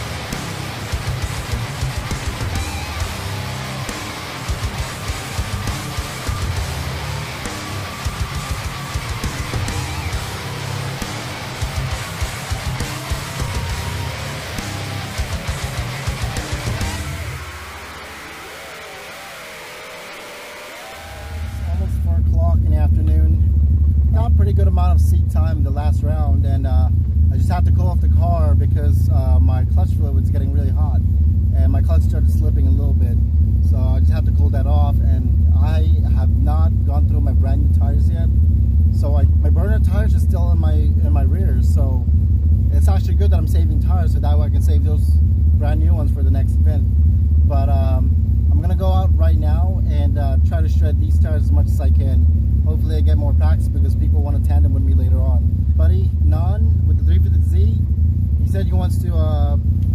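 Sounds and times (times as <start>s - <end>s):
heavy metal guitar music: 0.0s - 22.3s
rotary engine idling: 0.0s - 28.9s, 52.0s - 59.9s
man talking: 21.6s - 23.5s, 24.1s - 31.0s, 31.6s - 38.3s, 38.9s - 42.1s, 42.7s - 46.9s, 47.5s - 59.6s.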